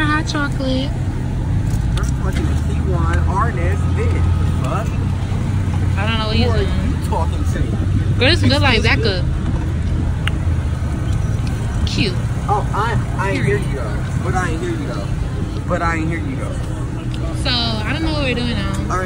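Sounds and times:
engine rumble: 0:00.0 - 0:19.0
people talking and exclaiming: 0:02.0 - 0:19.0.

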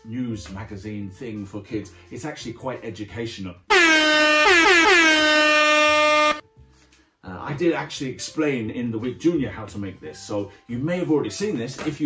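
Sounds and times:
air horn blasts: 0:03.7 - 0:06.4.

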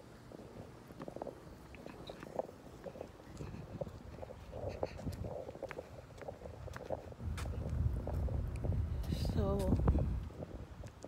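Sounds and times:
microphone rumble while walking: 0:00.0 - 0:11.0.

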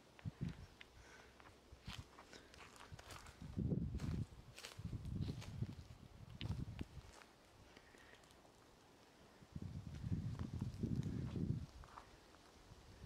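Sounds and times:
footsteps on dry ground: 0:00.2 - 0:08.4, 0:09.8 - 0:12.6.

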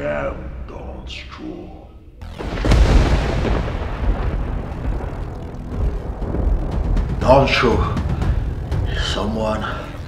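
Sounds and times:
thunder rumbling: 0:02.2 - 0:10.0.

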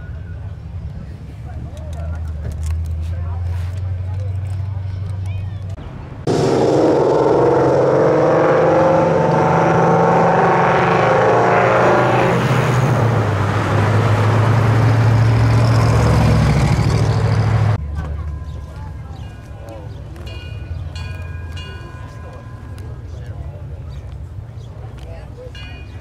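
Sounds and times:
low engine drone: 0:05.8 - 0:17.9
cars driving past: 0:05.8 - 0:21.0.

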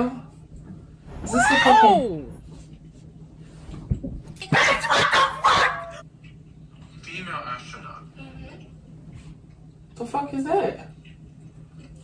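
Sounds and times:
sharp dog-like yelp: 0:04.6 - 0:06.0.

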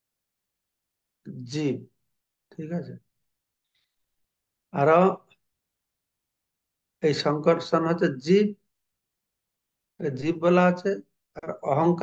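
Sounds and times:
man speaking: 0:01.3 - 0:03.1, 0:04.7 - 0:05.4, 0:10.0 - 0:12.0.

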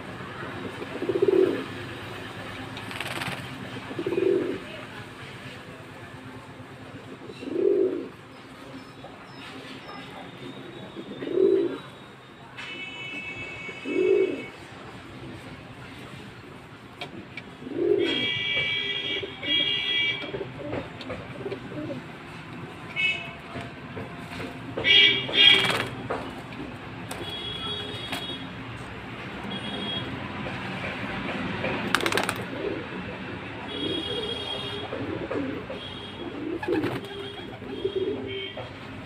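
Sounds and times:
pigeons cooing: 0:00.6 - 0:01.8, 0:03.0 - 0:04.7, 0:07.0 - 0:08.2, 0:17.4 - 0:18.4, 0:20.4 - 0:22.1, 0:32.0 - 0:33.0, 0:33.8 - 0:38.4.

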